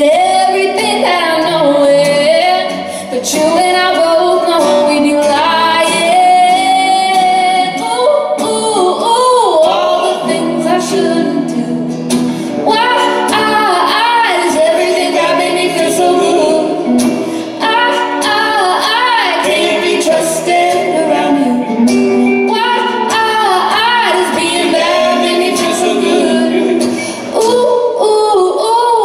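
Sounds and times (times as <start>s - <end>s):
electric guitar: 0.0s - 28.9s
acoustic guitar: 0.0s - 29.0s
woman singing: 0.0s - 29.0s.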